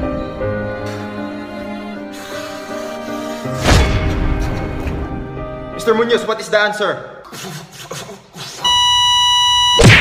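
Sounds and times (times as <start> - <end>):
steady electronic beep: 8.7 - 10.0.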